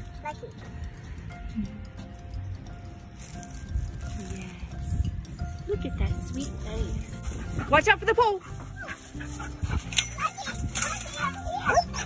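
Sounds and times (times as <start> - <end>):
background music: 0.0 - 12.0
dog whining: 8.5 - 12.0.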